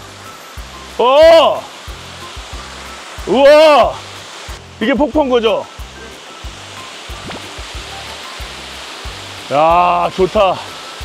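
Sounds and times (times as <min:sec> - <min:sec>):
water rushing down waterfall: 0:00.0 - 0:11.0
background music with bass beat: 0:01.9 - 0:10.0.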